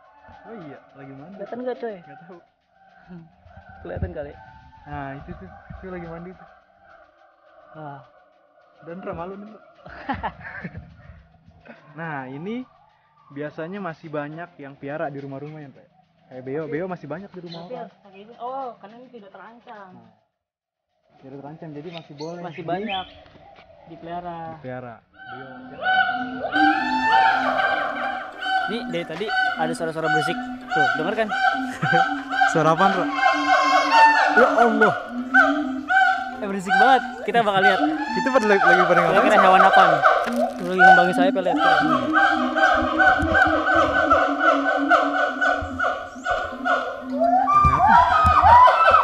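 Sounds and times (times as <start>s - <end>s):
gibbons hooting and whooping: 0.0s - 7.0s, 8.8s - 13.6s, 25.1s - 49.0s
apes calling in chorus: 0.0s - 12.7s, 25.0s - 49.0s.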